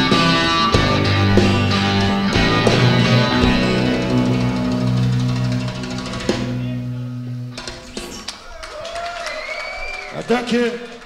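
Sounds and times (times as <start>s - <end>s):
rock band guitar chord ringing: 0.0s - 8.1s
drum roll: 0.0s - 8.6s.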